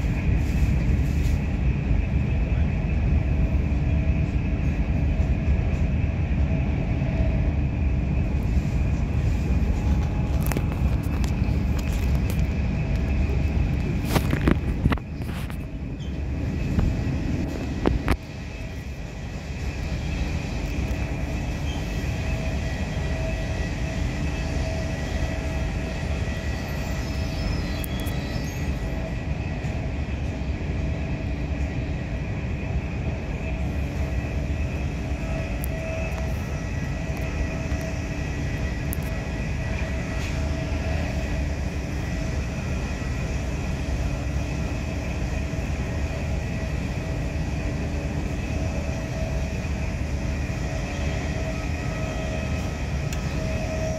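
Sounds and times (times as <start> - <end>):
train wheels rumbling on rail: 0.0 - 53.9.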